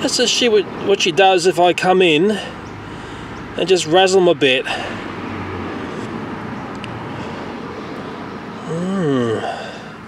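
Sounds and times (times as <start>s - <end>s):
man talking: 0.0s - 2.6s, 3.6s - 5.0s.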